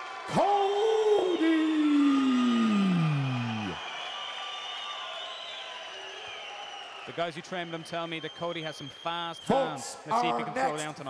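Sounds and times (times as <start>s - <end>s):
crowd cheering and shouting: 0.0s - 7.4s.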